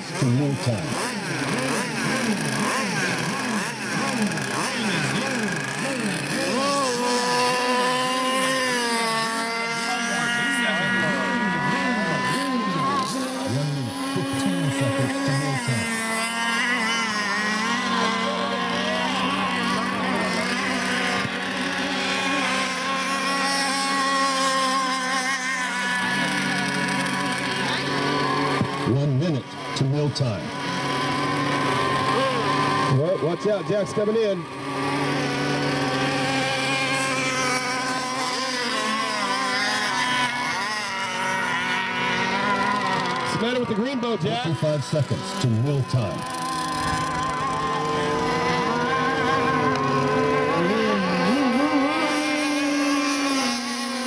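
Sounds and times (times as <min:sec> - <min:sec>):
racing boat motors passing by: 0:00.0 - 0:54.0.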